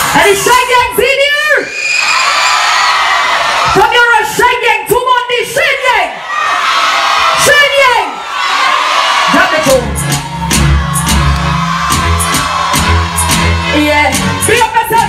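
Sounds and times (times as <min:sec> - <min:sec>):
crowd whooping and cheering: 0:01.4 - 0:04.0, 0:06.2 - 0:15.0
bass-heavy dancehall backing track: 0:09.4 - 0:15.0
woman's voice over loudspeakers: 0:13.7 - 0:15.0.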